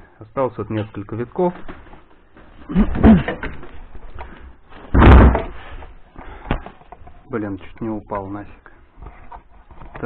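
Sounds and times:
loud thump: 4.9s - 5.6s.

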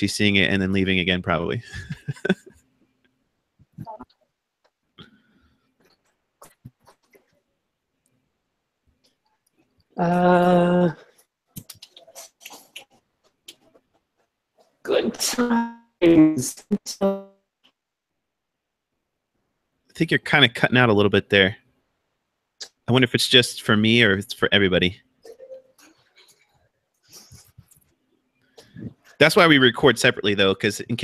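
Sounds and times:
garbled voice over video call: 0.0s - 2.4s, 10.0s - 11.0s, 14.9s - 17.2s, 20.0s - 21.6s, 22.6s - 25.5s, 28.7s - 31.0s.

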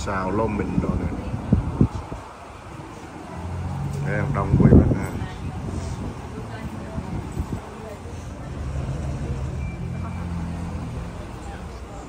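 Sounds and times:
car engine rumbling: 0.0s - 12.0s
murmur of people talking: 0.0s - 12.0s.

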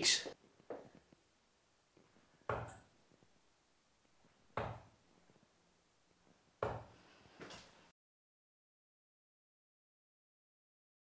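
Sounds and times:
dart striking dartboard: 2.5s - 2.8s, 4.6s - 4.9s, 6.6s - 6.9s.

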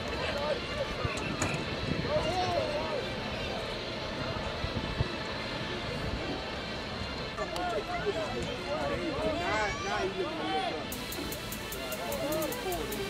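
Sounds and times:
distant voices and shouts: 0.0s - 13.0s
stadium background noise: 0.0s - 13.0s.

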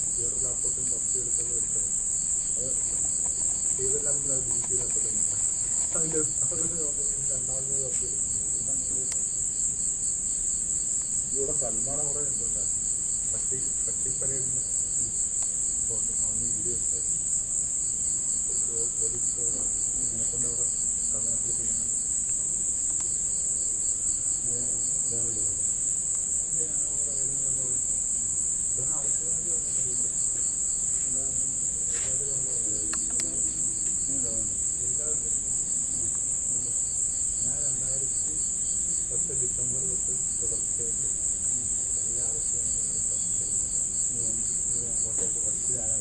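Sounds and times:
faint voices: 0.0s - 1.9s, 2.5s - 9.2s, 13.3s - 17.2s, 18.4s - 25.8s, 26.4s - 46.0s
crickets chirping: 0.0s - 46.0s.

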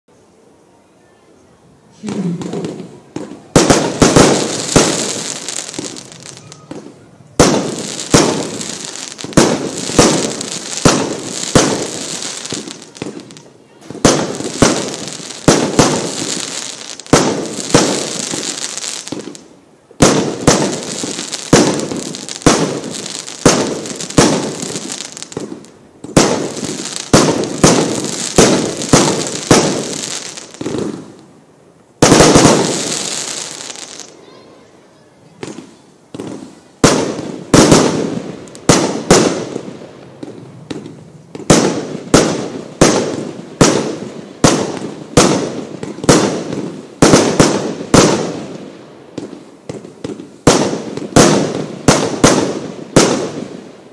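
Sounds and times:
firework stars crackling: 1.9s - 53.9s
firework bangs: 2.0s - 31.3s, 32.0s - 34.6s, 35.2s - 53.7s.

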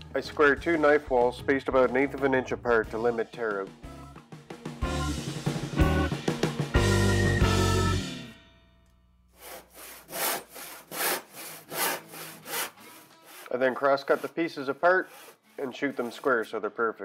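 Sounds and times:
hand saw cutting wood: 9.4s - 16.6s.

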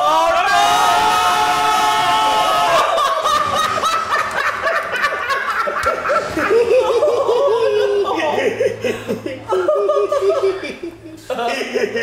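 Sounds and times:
people laughing: 2.3s - 12.0s.

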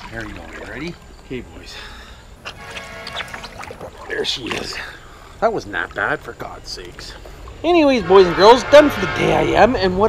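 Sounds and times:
pool water sloshing and splashing: 0.0s - 1.6s, 2.4s - 8.4s.

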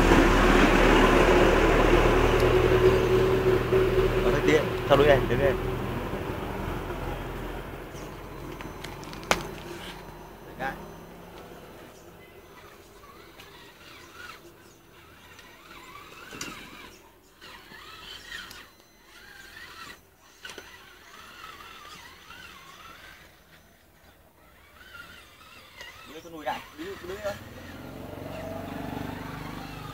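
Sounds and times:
rc truck motor whining: 0.0s - 29.9s.

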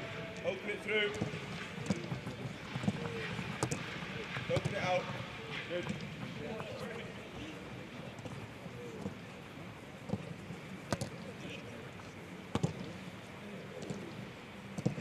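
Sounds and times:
faint background voices: 0.0s - 15.0s.

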